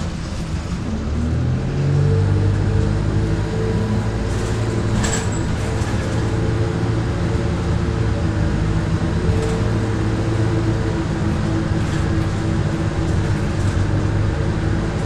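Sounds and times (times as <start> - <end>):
bus diesel engine running: 0.0 - 15.0.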